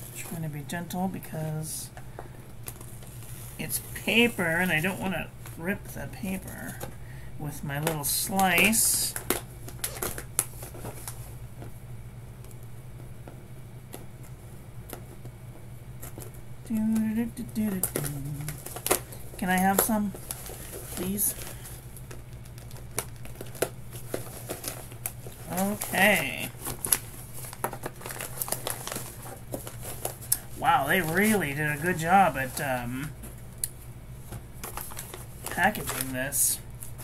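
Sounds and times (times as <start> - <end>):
paper mailer crinkling: 7.8 - 11.4, 15.9 - 37.0.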